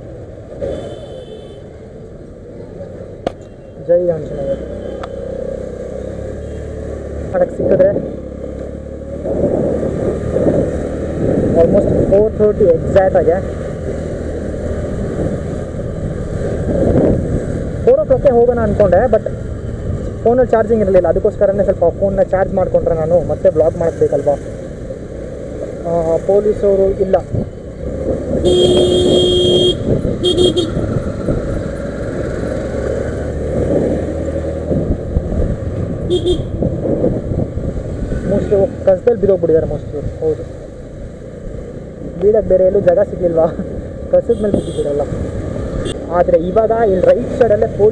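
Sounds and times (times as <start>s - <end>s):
wind and road noise: 0.0s - 47.9s
vehicle horn honking: 0.6s - 1.7s, 28.4s - 30.8s, 36.1s - 36.6s, 44.4s - 44.9s
wind buffeting microphone: 9.1s - 12.9s, 14.3s - 22.1s, 27.1s - 32.6s, 33.2s - 38.9s.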